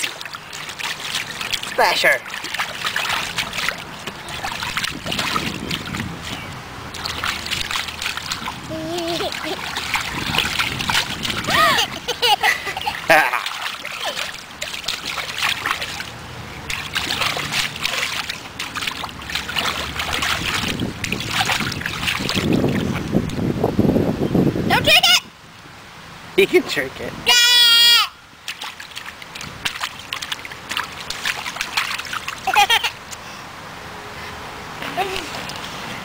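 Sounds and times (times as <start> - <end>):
hands splashing water: 0.0 - 23.4, 28.4 - 33.2
baby squealing and babbling: 11.4 - 12.0, 27.3 - 28.2.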